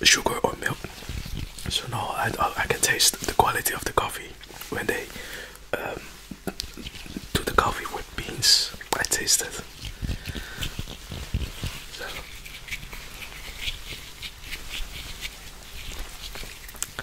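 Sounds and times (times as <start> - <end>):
soft whispered speech: 0.0 - 9.8, 11.9 - 12.3.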